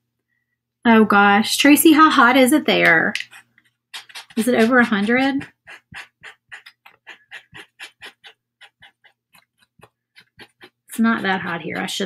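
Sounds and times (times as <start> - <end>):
paint pen tapping on wood: 8.6 - 12.0.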